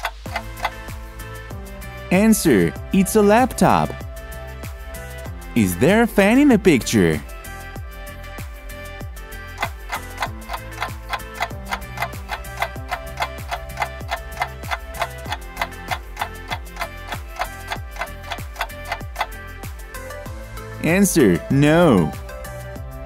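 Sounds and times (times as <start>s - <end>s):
clock-like ticking: 0.0s - 1.0s, 9.5s - 19.5s
background music: 0.0s - 23.0s.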